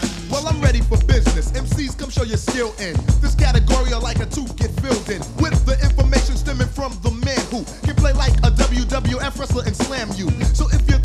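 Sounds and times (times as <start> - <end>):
man rapping over a beat: 0.0 - 11.0
deep sustained bass line: 0.4 - 2.1, 3.1 - 6.9, 8.0 - 9.7, 10.4 - 11.0.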